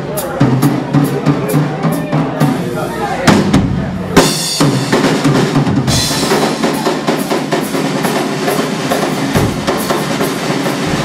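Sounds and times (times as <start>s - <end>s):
snare and tom drum strokes: 0.0s - 11.0s.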